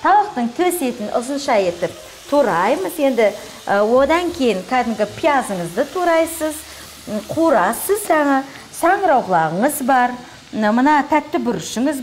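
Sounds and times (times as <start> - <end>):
chicken and onion sizzling in pan: 0.0 - 12.0
woman talking: 0.0 - 12.0.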